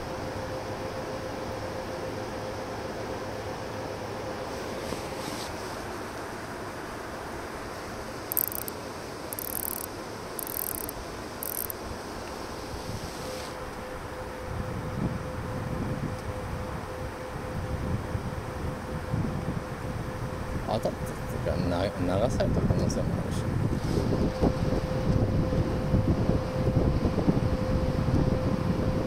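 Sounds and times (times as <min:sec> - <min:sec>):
faint constant hum: 0:00.0 - 0:29.0
wind buffeting microphone: 0:14.4 - 0:21.4, 0:22.4 - 0:29.0.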